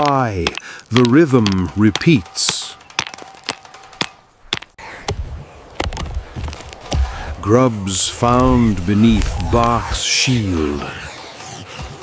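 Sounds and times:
stone striking stone: 0:00.0 - 0:04.8.

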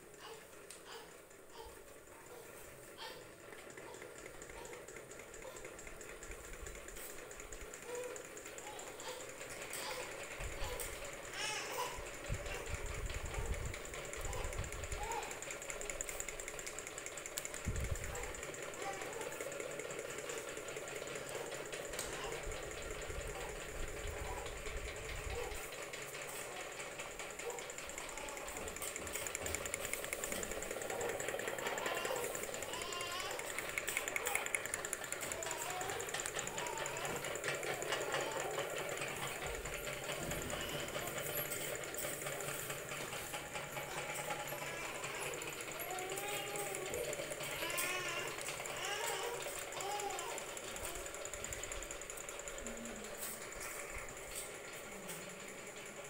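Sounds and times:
engine mechanical clatter: 0:00.0 - 0:56.0
whir of spinning fan blades: 0:00.0 - 0:56.0.

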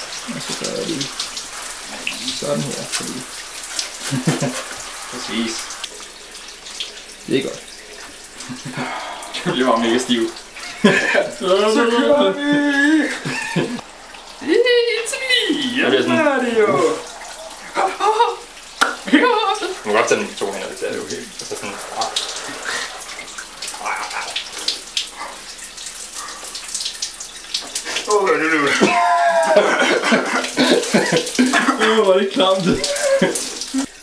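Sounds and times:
shower water spraying on tiles: 0:00.0 - 0:34.0.

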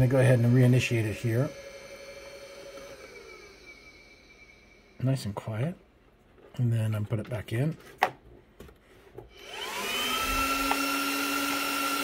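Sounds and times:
cooling fans winding down: 0:00.0 - 0:05.4.

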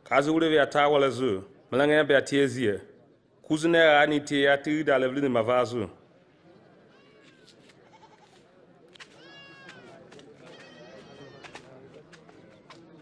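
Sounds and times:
faint animal bleating: 0:06.9 - 0:08.4, 0:10.5 - 0:11.6.

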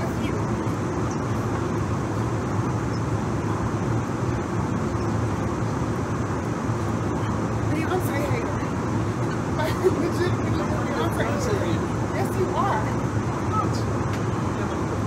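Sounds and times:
airliner cabin noise: 0:00.0 - 0:15.0.

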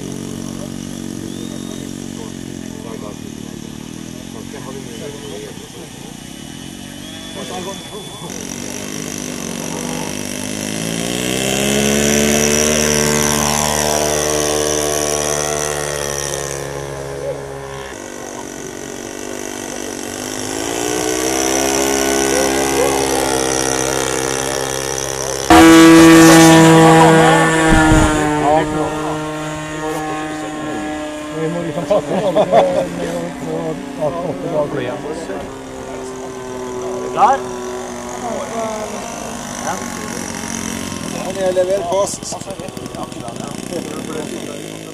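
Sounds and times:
loud steady engine nearby: 0:00.0 - 0:44.9
model airplane engines in flight: 0:00.0 - 0:44.9.

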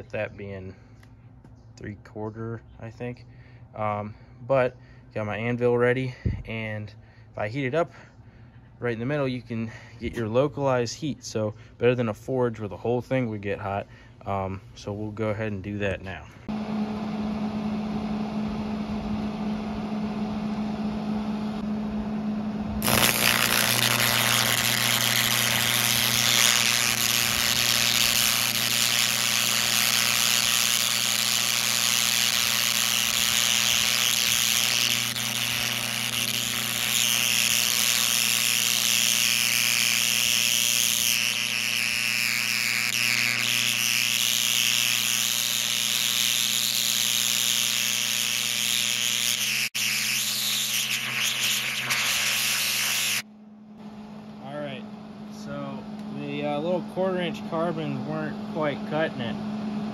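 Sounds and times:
low hum: 0:16.2 - 0:45.9
arc torch crackling hiss: 0:22.8 - 0:53.2.

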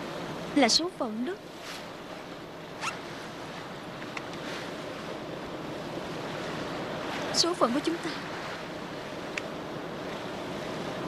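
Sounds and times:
sea noise: 0:00.0 - 0:11.0
wind: 0:00.0 - 0:11.0.

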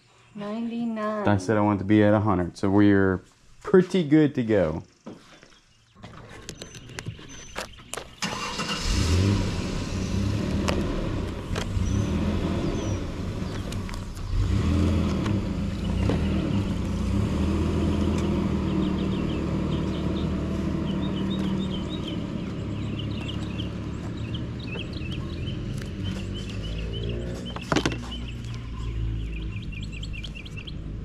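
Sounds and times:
engine running: 0:06.8 - 0:31.0.

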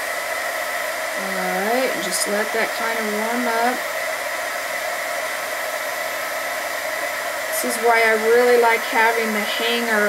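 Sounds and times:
heat gun blowing air: 0:00.0 - 0:10.0.

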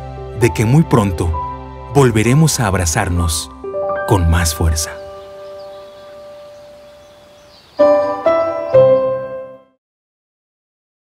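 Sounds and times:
held background music notes: 0:00.0 - 0:09.8.

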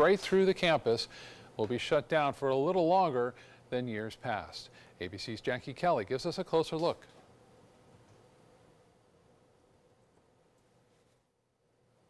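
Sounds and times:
weak steady hum: 0:00.0 - 0:12.0.

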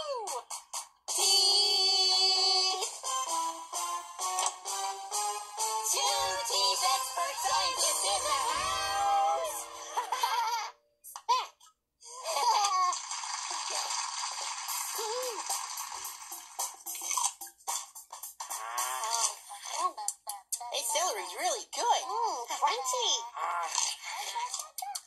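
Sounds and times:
background music: 0:00.0 - 0:11.0
cartoon children laughing: 0:07.2 - 0:10.8, 0:12.1 - 0:13.1.

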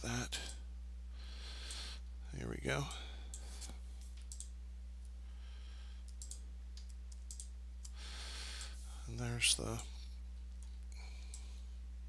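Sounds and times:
low electrical hum: 0:00.0 - 0:12.0
computer mouse clicks: 0:03.3 - 0:04.5, 0:06.0 - 0:08.0.

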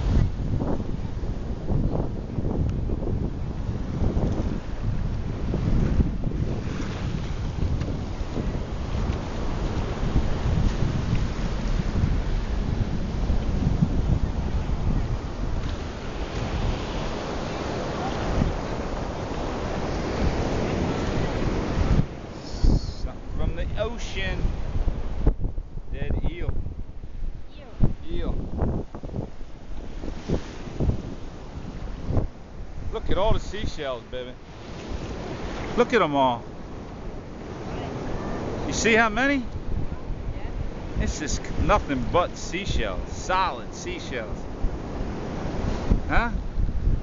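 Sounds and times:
small waves breaking on sand: 0:00.0 - 0:25.6, 0:26.8 - 0:47.0
wind buffeting microphone: 0:00.0 - 0:47.0.

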